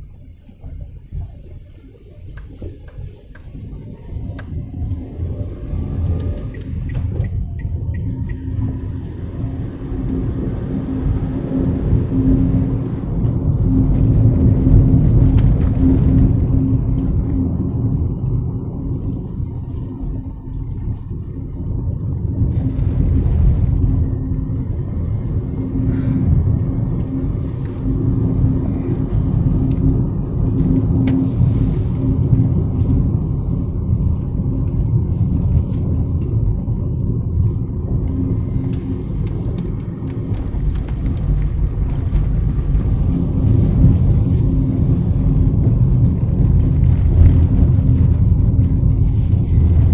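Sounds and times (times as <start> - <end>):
car engine and road noise: 0.0 - 49.9.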